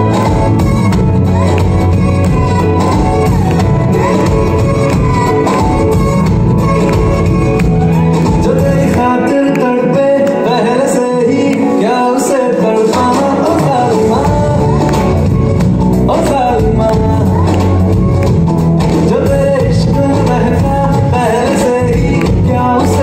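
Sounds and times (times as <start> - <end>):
person singing: 0.0 - 23.0.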